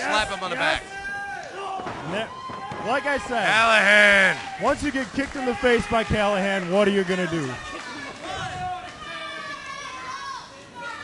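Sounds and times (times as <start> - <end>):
indistinct crowd voices: 0.0 - 11.0.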